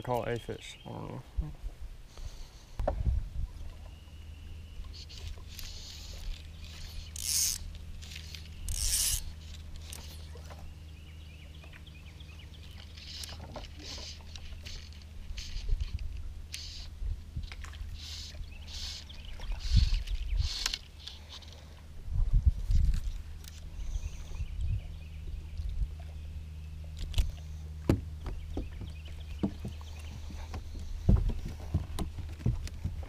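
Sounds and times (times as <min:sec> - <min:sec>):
steady low hum: 0:00.0 - 0:33.0
fly line hissing through guides: 0:04.9 - 0:10.2, 0:13.0 - 0:15.8, 0:18.0 - 0:21.6.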